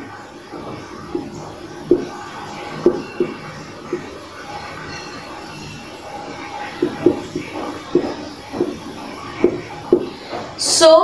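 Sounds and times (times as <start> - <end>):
marker squeaking on a whiteboard: 0.5 - 10.8.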